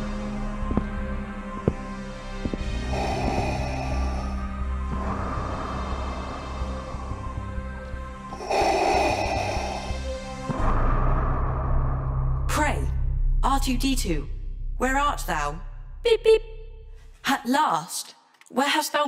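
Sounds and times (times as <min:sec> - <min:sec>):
steady low drone: 0:00.0 - 0:17.0
background music: 0:00.0 - 0:18.1.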